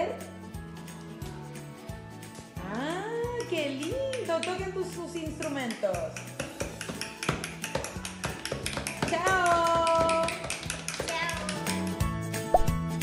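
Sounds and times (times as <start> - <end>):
music: 0.0 - 13.0
children tapping toy instruments: 6.1 - 12.0.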